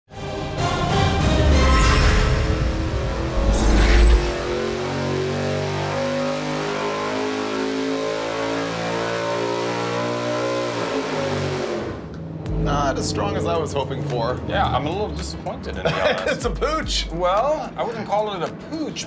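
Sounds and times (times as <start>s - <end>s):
theme music: 0.1s - 6.0s, 12.2s - 17.9s
sharp musical hit: 1.4s - 5.2s
engine revving on a dyno: 4.2s - 12.2s.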